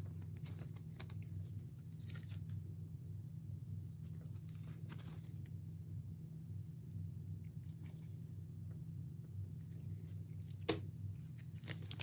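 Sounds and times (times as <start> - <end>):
steady low hum: 0.0 - 12.0
plastic sleeve rustling: 4.0 - 5.6, 9.8 - 12.0.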